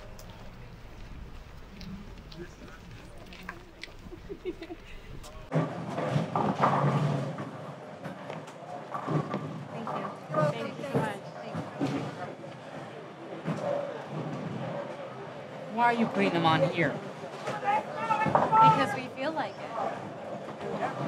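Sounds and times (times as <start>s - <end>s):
indistinct chatter: 0.0s - 21.0s.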